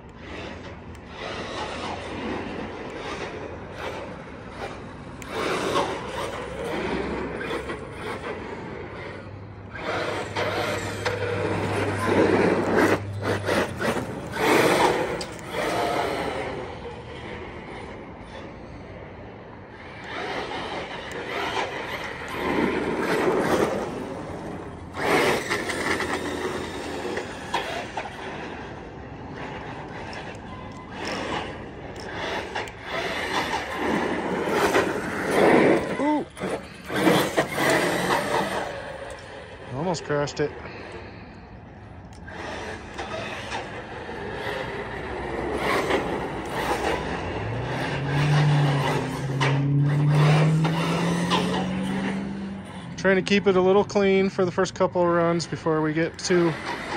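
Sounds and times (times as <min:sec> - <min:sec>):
electric motor whine: 0:00.0 - 0:41.2, 0:42.1 - 0:54.2
tyre noise on asphalt: 0:00.0 - 0:56.9.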